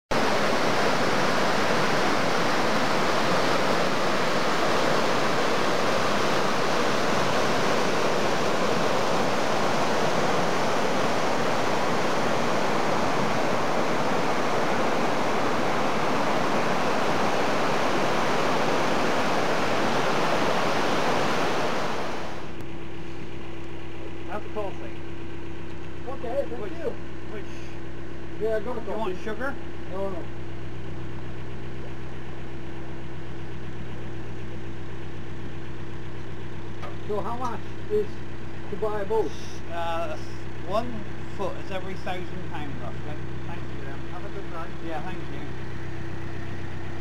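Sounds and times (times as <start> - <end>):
water rushing over a weir: 0.1 - 22.6
idling boat engine hum: 0.1 - 47.0.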